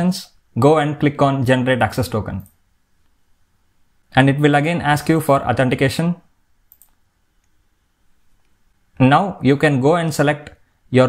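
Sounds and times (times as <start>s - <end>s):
person speaking: 0.0s - 2.6s, 4.1s - 6.3s, 8.9s - 11.0s.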